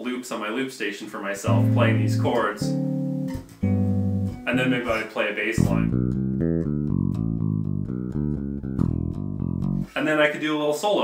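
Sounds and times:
electric bass guitar plucking: 1.4 - 10.0.

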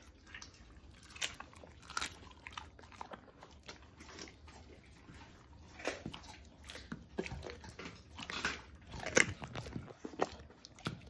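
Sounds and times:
dog chewing and crunching bone: 0.0 - 11.0.

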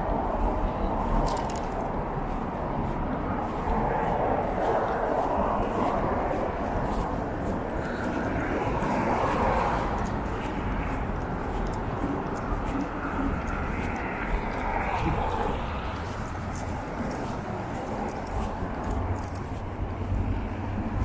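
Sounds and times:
cars passing on slushy road: 0.0 - 21.0
footsteps on snow: 1.0 - 21.0.

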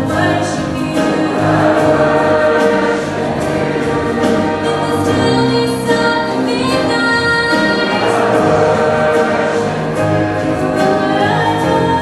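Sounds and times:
girl soloists singing: 0.0 - 12.0
youth choir singing: 0.0 - 12.0.

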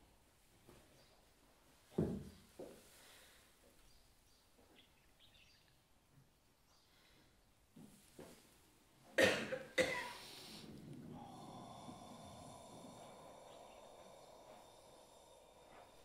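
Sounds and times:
faint background noise: 0.0 - 16.0
person coughing: 9.2 - 10.3.

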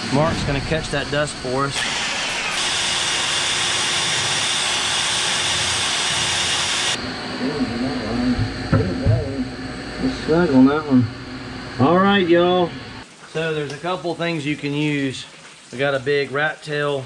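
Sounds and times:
people talking: 0.0 - 1.8, 7.3 - 11.1, 11.8 - 17.0
hole saw drill whining: 1.7 - 7.0.

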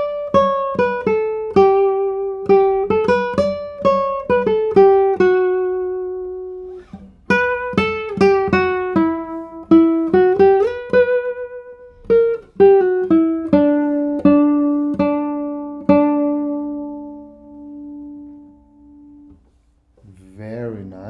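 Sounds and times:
classical guitar fingerstyle melody: 0.0 - 20.2.

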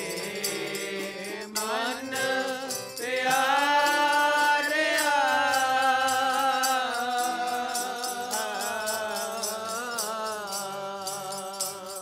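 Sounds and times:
harmonium drone: 0.0 - 10.0
man singing: 0.0 - 12.0.

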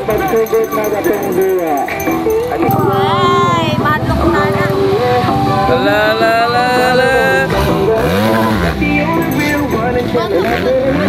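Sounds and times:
dirt bike engines running: 0.0 - 11.0
engine revving: 3.3 - 11.0.

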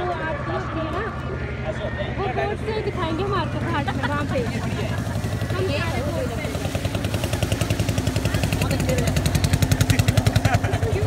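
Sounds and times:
boat engine chugging: 0.0 - 11.0.

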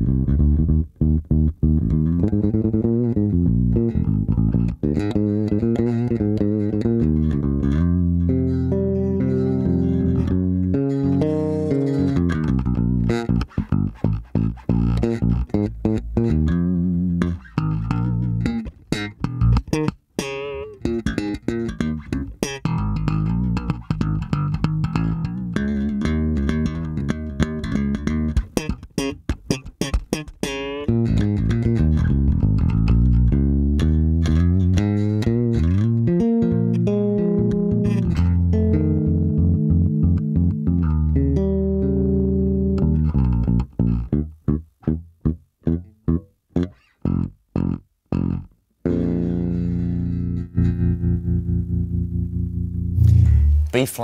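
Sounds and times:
electric bass playing: 0.0 - 54.0.

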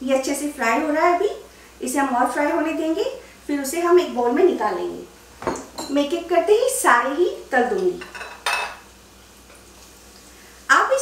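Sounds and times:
food sizzling in oil: 4.6 - 11.0.

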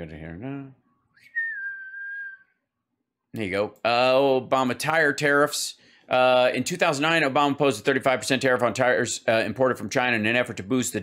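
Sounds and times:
whistled note: 1.2 - 2.6.

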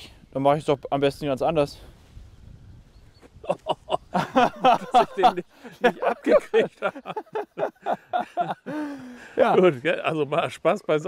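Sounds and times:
man laughing and exclaiming: 3.4 - 10.4.

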